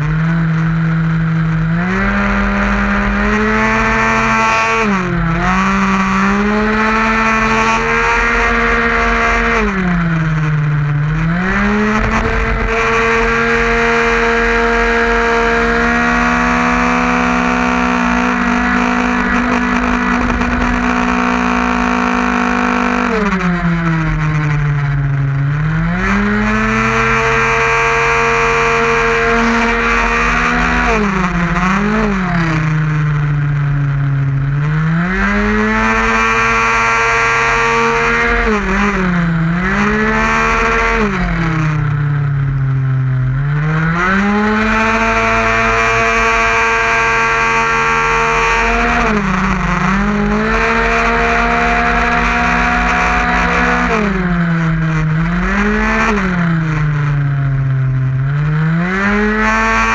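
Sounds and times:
scooter engine at full throttle: 0.0 - 59.9.

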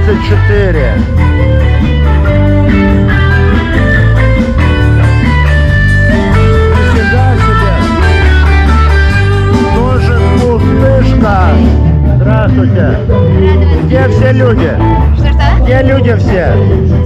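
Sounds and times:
electric guitar: 0.0 - 17.0
heavy bass line: 0.0 - 17.0.

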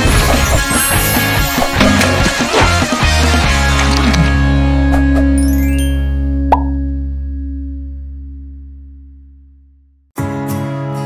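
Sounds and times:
jingle chord ringing out: 5.4 - 6.8
pop sound effect: 6.5 - 6.8.

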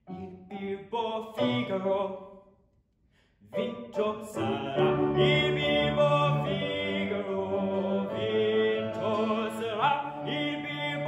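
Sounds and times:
operatic voice singing: 0.1 - 2.4, 3.5 - 11.0.

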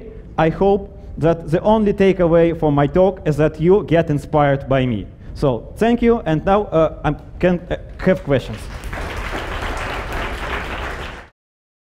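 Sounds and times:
audience applauding: 8.2 - 11.3.

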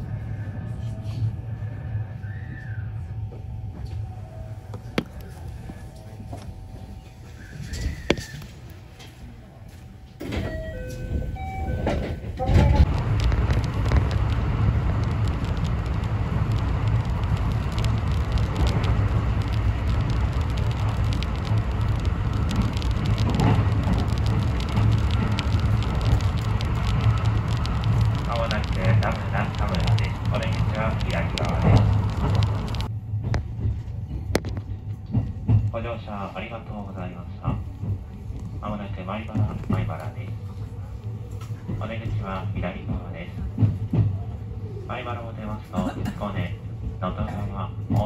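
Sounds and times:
train running on rails: 0.0 - 48.0.

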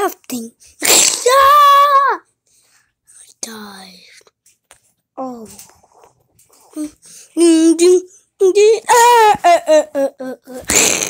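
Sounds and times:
child making vocal sounds: 0.0 - 2.3, 6.6 - 10.8.

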